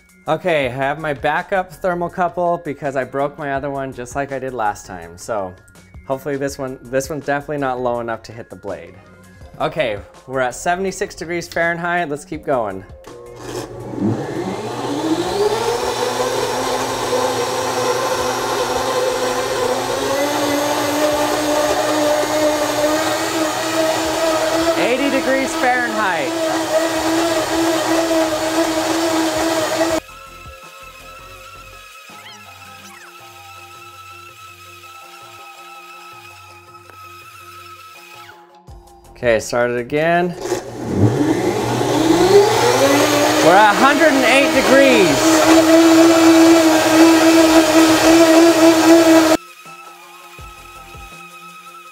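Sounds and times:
background music: 0:00.0 - 0:51.9
blender whining at full speed: 0:13.1 - 0:38.4, 0:40.4 - 0:51.9.

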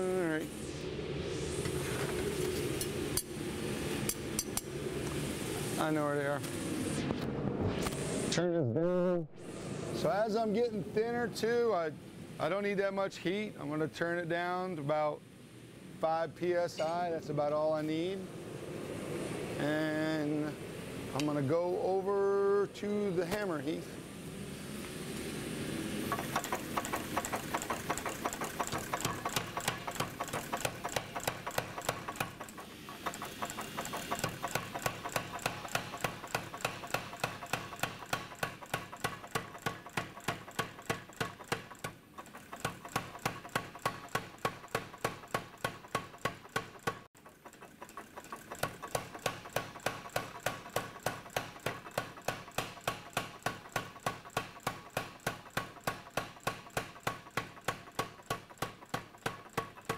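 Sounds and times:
power hammer striking hot steel: 0:04.0 - 0:04.8, 0:26.1 - 0:59.9.

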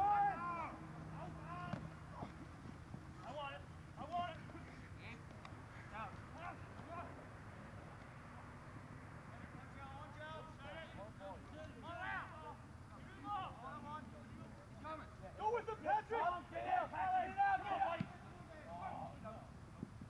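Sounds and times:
men shouting calls: 0:00.0 - 0:02.4, 0:03.2 - 0:07.3, 0:09.4 - 0:19.6
steady background hiss: 0:00.0 - 0:20.0.

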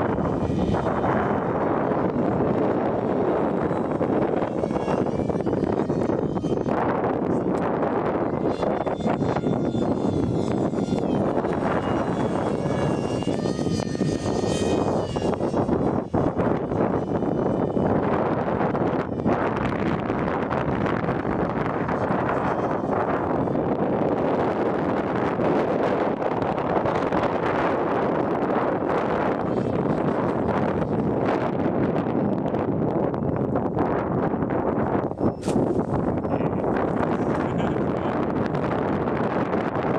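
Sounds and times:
model jet high whine: 0:00.0 - 0:39.9
steady rushing noise: 0:00.0 - 0:39.9.

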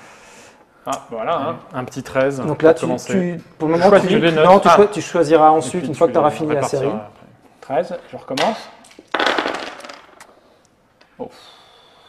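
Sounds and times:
plastic dice clattering on table: 0:08.4 - 0:10.3.

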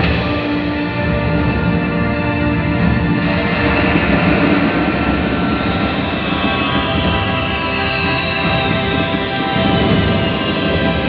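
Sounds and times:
sustained music tones: 0:00.0 - 0:11.0.

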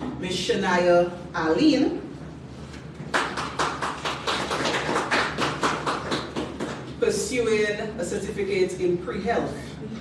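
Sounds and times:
people clapping: 0:03.0 - 0:07.0.

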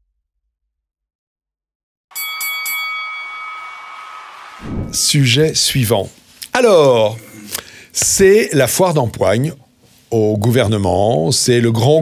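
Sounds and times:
boxing bell ringing: 0:02.1 - 0:04.0.

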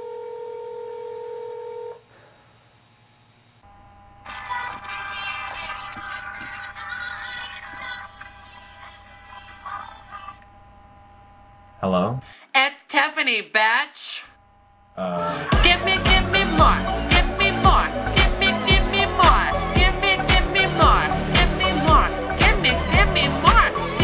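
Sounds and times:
telephone ringing tone: 0:00.0 - 0:02.0
music with a voice: 0:15.1 - 0:24.0.

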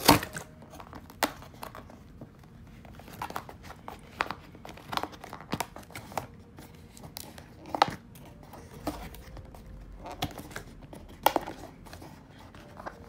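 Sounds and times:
cardboard packaging rustling: 0:00.0 - 0:13.0.

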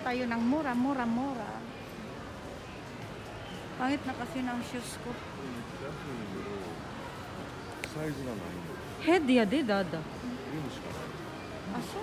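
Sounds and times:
faint distant voices: 0:00.0 - 0:12.0
store background hubbub: 0:00.0 - 0:12.0.

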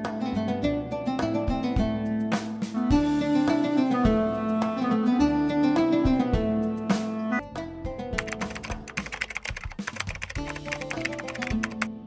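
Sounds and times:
background music: 0:00.0 - 0:12.0
keyboard typing clicks: 0:08.2 - 0:11.9.

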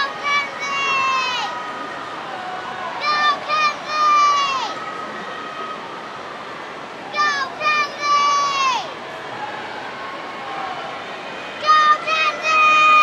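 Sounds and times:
crowd of spectators din: 0:00.0 - 0:13.0.

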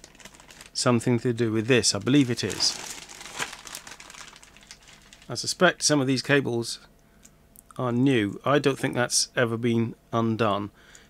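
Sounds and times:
plastic bag crinkling: 0:00.0 - 0:05.6.

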